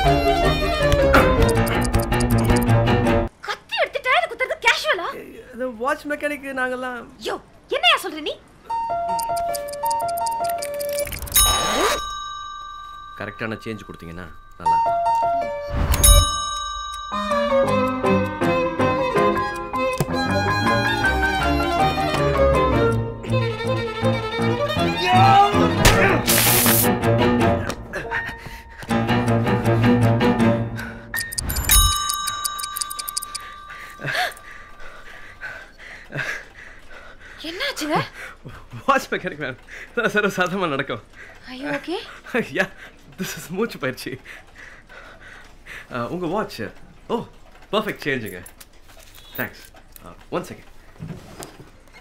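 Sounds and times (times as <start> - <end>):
high ringing tone: 9.1 - 14.9, 31.2 - 34.5
bright metallic chime: 10.8 - 14.9, 31.2 - 34.6
light melody of high notes: 31.2 - 34.5.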